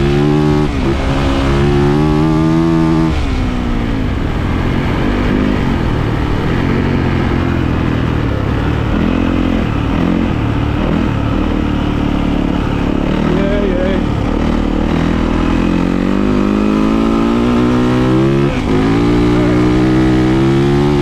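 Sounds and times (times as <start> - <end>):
dirt bike engine revving: 0.0 - 21.0.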